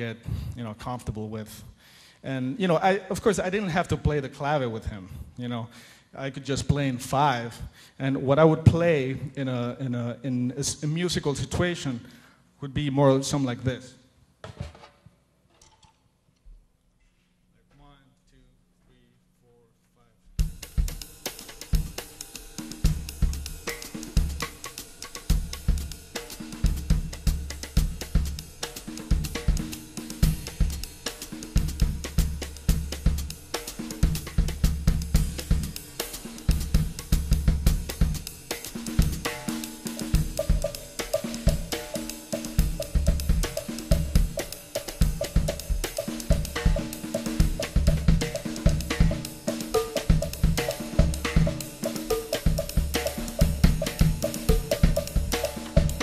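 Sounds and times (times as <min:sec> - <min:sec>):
drum kit playing a groove: 0:20.4 - 0:56.0.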